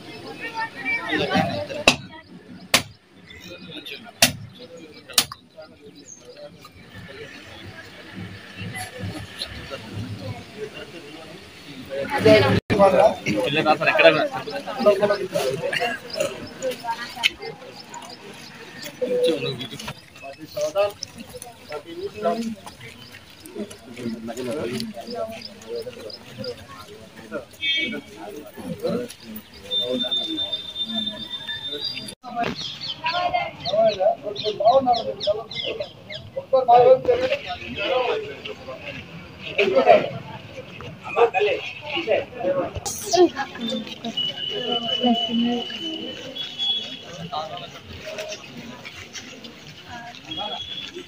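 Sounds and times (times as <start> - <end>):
people talking: 0.0 - 51.0.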